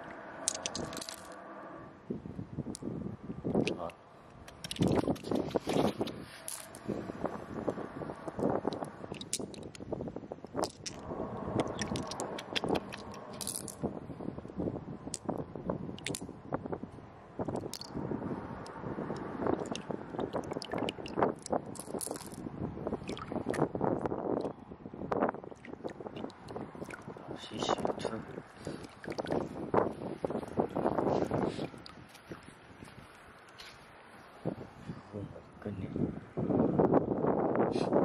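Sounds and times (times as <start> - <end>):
wind on microphone: 0.0 - 38.0.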